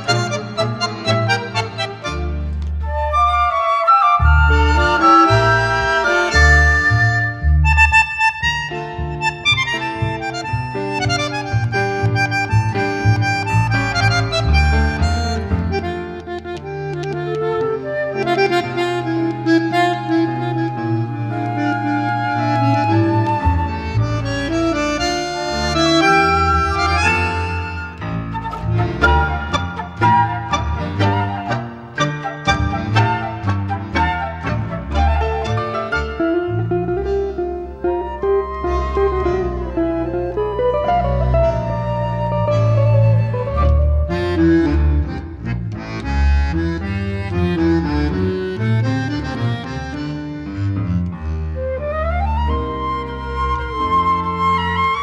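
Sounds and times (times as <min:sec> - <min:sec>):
tango orchestra music: 0:00.0 - 0:55.0.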